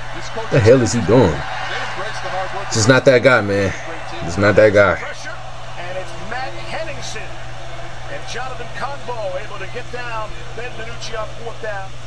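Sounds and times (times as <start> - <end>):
commentators talking: 0.0 - 12.0
low background hum: 0.0 - 12.0.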